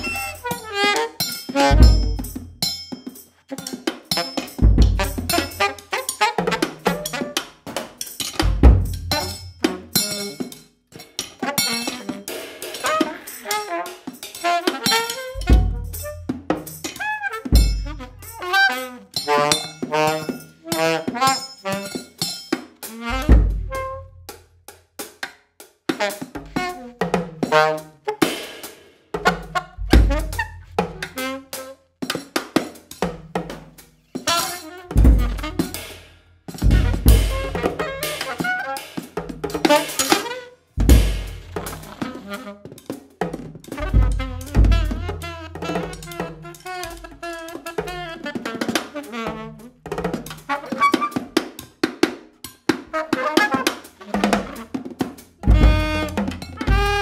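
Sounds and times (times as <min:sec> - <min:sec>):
alto saxophone phrases: 0:00.0 - 0:02.2, 0:17.0 - 0:21.3, 0:23.0 - 0:24.0, 0:34.3 - 0:35.8, 0:36.7 - 0:38.9, 0:41.8 - 0:42.8, 0:43.8 - 0:49.7, 0:55.5 - 0:57.0
drum and cymbal strikes: 0:00.0 - 0:47.2, 0:53.8 - 0:57.0
deep low thumps: 0:08.4 - 0:09.2, 0:29.8 - 0:30.9, 0:36.6 - 0:37.6, 0:40.8 - 0:41.6, 0:43.8 - 0:44.9.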